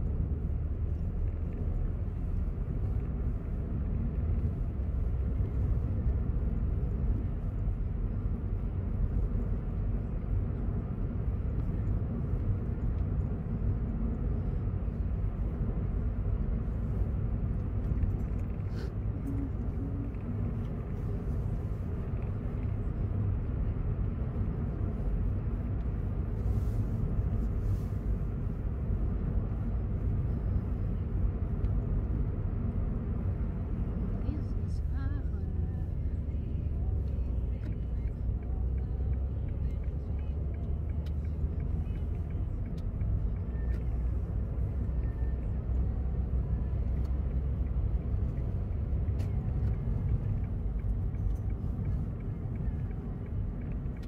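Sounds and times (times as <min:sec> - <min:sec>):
car engine running low: 0:00.0 - 0:54.0
road rumble: 0:00.0 - 0:54.0.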